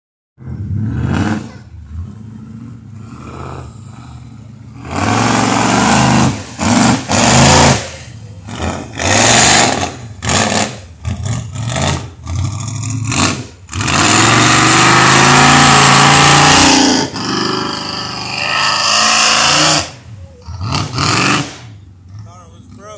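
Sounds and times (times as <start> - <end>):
engine revving hard: 0.4 - 4.0, 4.7 - 22.9.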